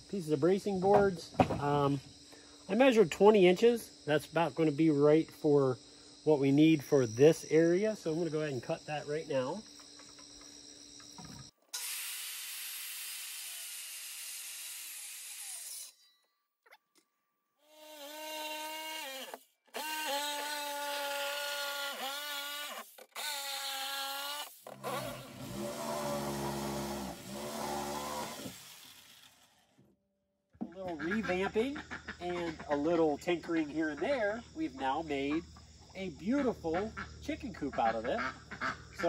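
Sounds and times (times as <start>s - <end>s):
power drill driving into wood: 11.7s - 16.0s, 17.7s - 29.6s
circular saw cutting wood: 11.7s - 16.1s, 17.6s - 29.8s.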